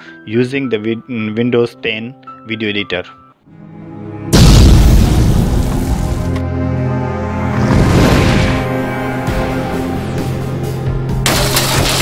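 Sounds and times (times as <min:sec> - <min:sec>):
music: 0:00.0 - 0:12.0
cinematic boom hit: 0:04.3 - 0:06.4.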